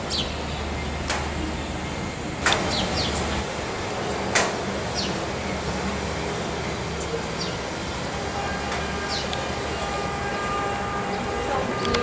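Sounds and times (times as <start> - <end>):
city background hum: 0.0 - 12.0.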